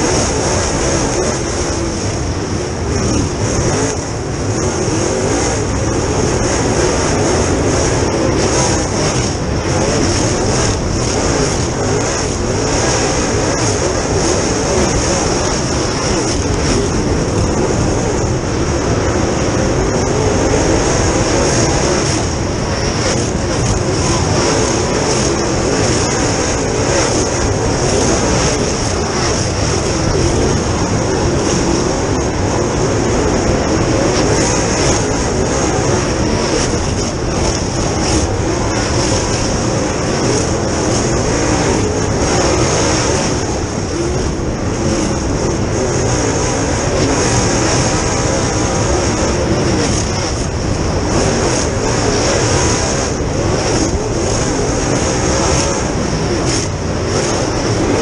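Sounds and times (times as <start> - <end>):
racing engine running hard: 0.0 - 58.0.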